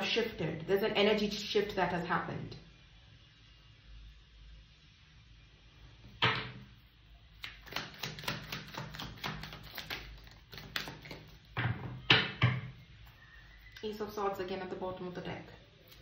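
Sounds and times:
cards shuffled on wooden table: 0:07.6 - 0:11.4.

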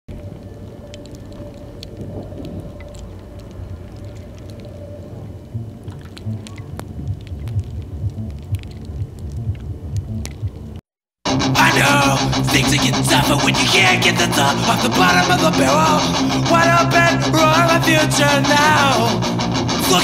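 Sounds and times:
low rumbling drone: 0:00.1 - 0:10.6
crackles and clicks: 0:00.1 - 0:20.0
low pulses: 0:00.1 - 0:20.0.

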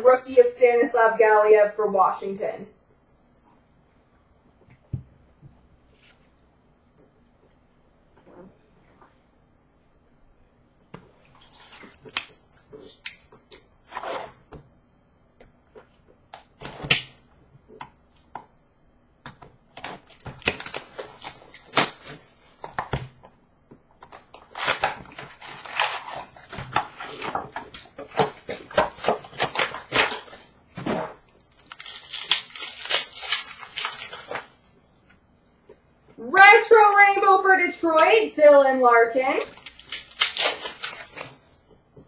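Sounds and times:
foil wrappers crinkling: 0:24.1 - 0:30.5, 0:31.2 - 0:34.6, 0:39.4 - 0:41.4.

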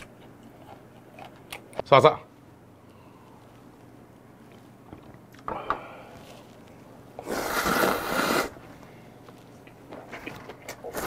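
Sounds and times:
person slurping noodles: 0:07.2 - 0:08.6, 0:10.8 - 0:11.0.

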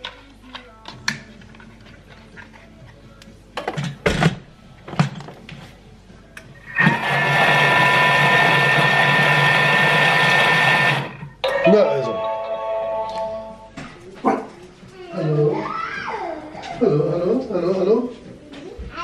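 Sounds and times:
kitchen machine motor whirring: 0:06.6 - 0:11.4.

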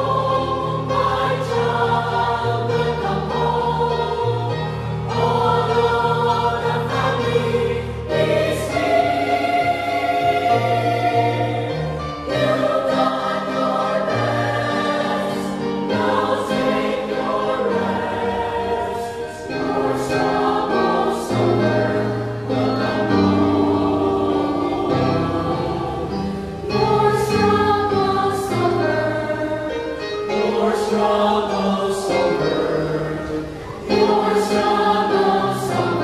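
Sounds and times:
mixed choir singing: 0:00.0 - 0:36.0.

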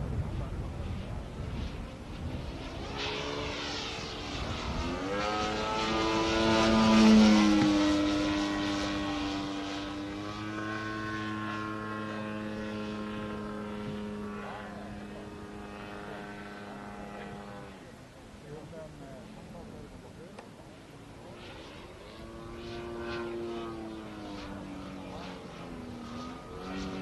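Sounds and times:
model airplane engine flying by: 0:00.0 - 0:27.0.

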